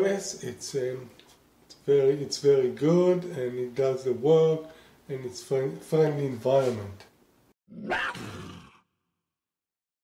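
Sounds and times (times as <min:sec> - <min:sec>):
lion cub roar: 0:07.7 - 0:08.8.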